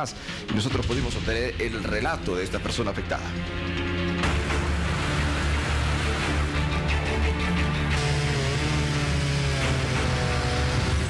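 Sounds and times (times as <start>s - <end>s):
chainsaw cutting tree trunk: 4.2s - 11.0s.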